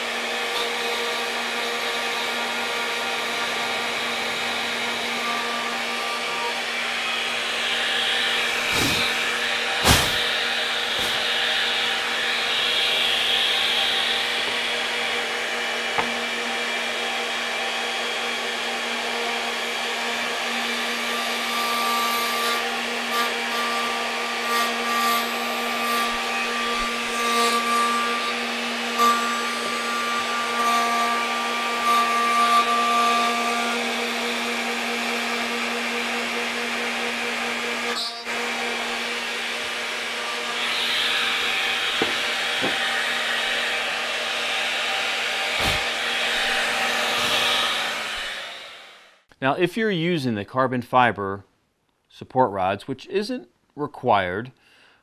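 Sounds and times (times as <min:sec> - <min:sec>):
router bit whine cutting wood: 0:00.0 - 0:49.2
router running: 0:00.0 - 0:49.2.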